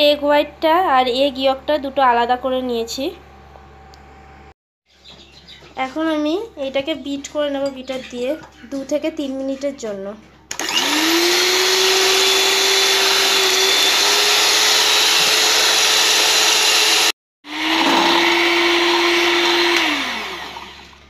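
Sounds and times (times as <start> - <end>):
electric hand mixer whirring: 10.5 - 21.0.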